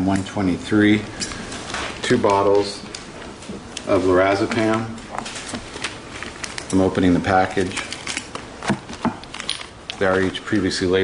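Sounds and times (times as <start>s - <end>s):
package rustling: 1.4s - 10.8s.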